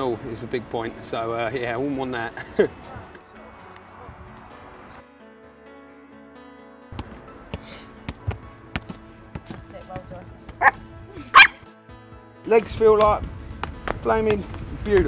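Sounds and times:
background music: 0.0s - 15.0s
small dog barking: 10.6s - 11.6s.

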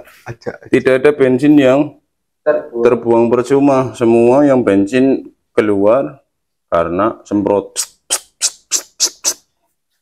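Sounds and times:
man making hissing mouth sounds: 7.7s - 9.6s.

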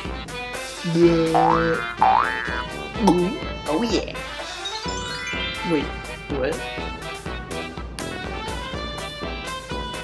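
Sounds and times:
cartoon boing sound effects: 1.2s - 3.4s.

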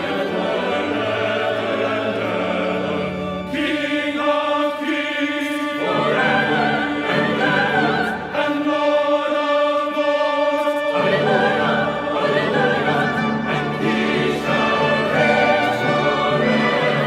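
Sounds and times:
church choir singing: 0.0s - 17.0s.

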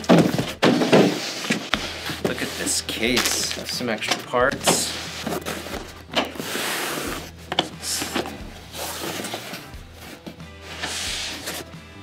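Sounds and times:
foam case lid scraping: 0.0s - 3.7s, 4.5s - 11.8s
background music: 0.0s - 12.0s.

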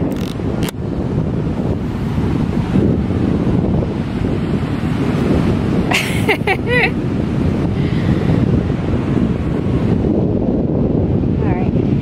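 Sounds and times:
ocean surf: 0.0s - 12.0s
wind buffeting microphone: 0.0s - 12.0s.

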